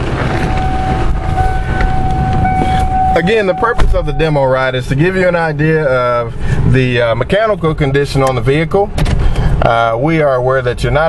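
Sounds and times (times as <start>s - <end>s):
steady high-pitched tone: 0.4s - 4.8s.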